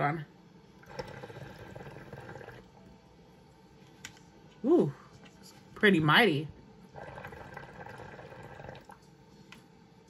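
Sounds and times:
hookah bubbling: 0:00.8 - 0:03.0, 0:06.9 - 0:09.2.

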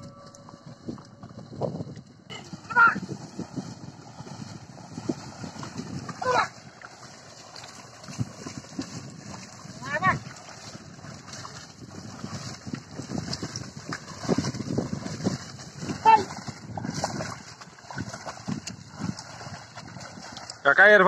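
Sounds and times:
hooves sloshing through mud: 0:00.0 - 0:21.0.

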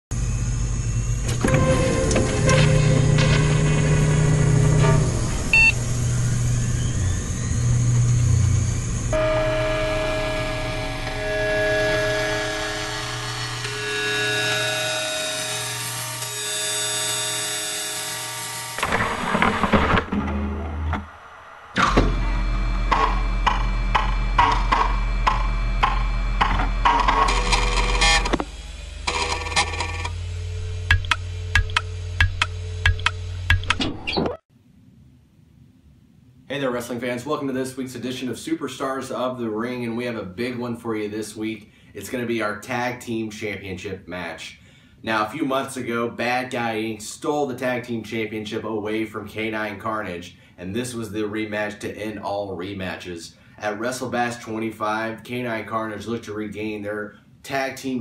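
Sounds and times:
low rumble: 0:00.2 - 0:09.2
cinematic intro music: 0:01.4 - 0:06.1.

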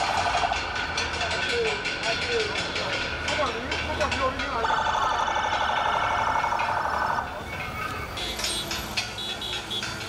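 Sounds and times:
vehicle noise: 0:00.0 - 0:10.0.

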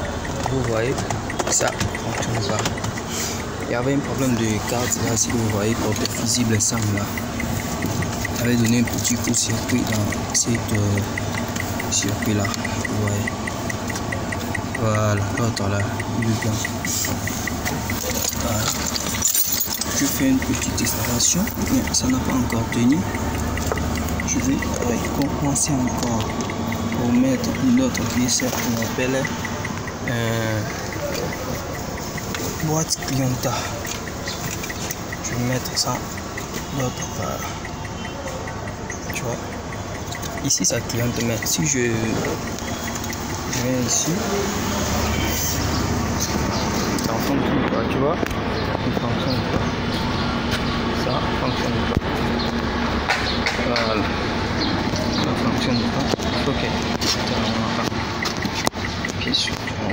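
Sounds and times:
car engine running: 0:00.0 - 0:59.9
turn signal flasher ticking fast: 0:00.0 - 0:59.9
wires and connectors rattling: 0:07.9 - 0:29.9.

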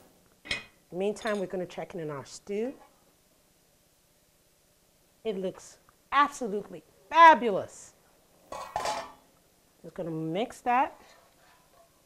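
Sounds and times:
metal pot lid clattering: 0:08.5 - 0:09.2.

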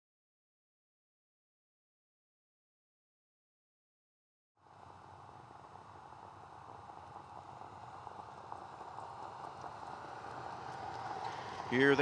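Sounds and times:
racetrack noise: 0:04.6 - 0:12.0.

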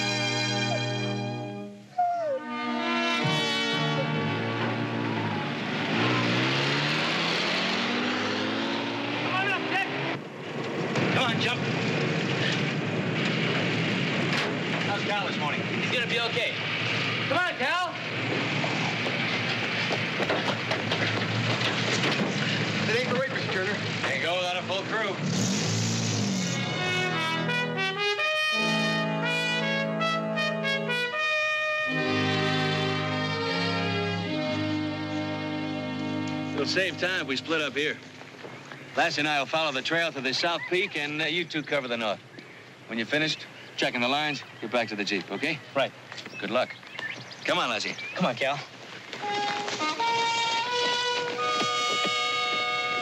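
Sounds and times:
brass-led orchestral music: 0:00.0 - 0:10.2, 0:26.2 - 0:37.8, 0:49.1 - 0:53.0
car engine pulling away: 0:03.0 - 0:30.0, 0:31.8 - 0:41.6, 0:45.0 - 0:53.0.

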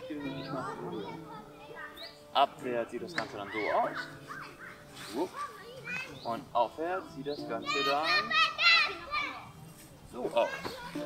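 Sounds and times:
children calling out: 0:03.3 - 0:06.2, 0:07.6 - 0:09.6.

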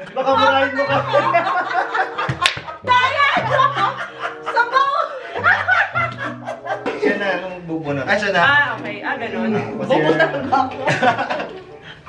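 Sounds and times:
background music with held notes: 0:00.0 - 0:12.0
people laughing and chattering: 0:00.0 - 0:12.0.

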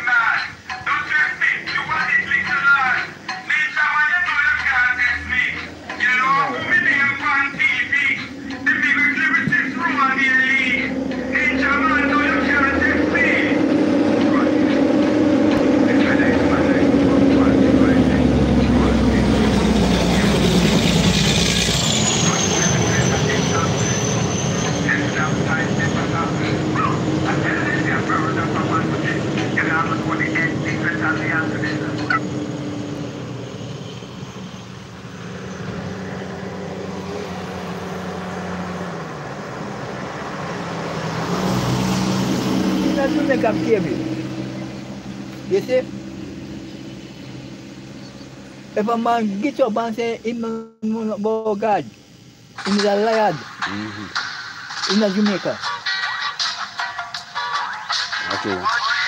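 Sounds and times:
vehicle passing on road: 0:00.0 - 0:50.3
vehicle approaching: 0:00.0 - 0:59.0.

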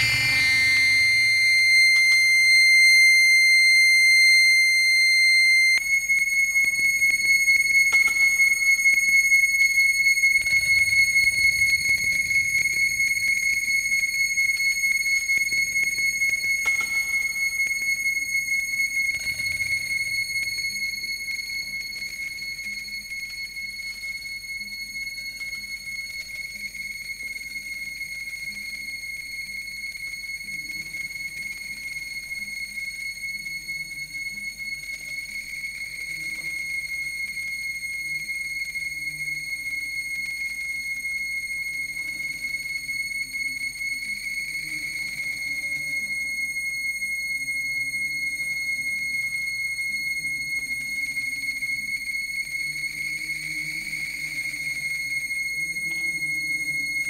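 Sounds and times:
low gliding notes: 0:00.0 - 0:02.2
high whistle-like tone: 0:00.0 - 0:57.0.

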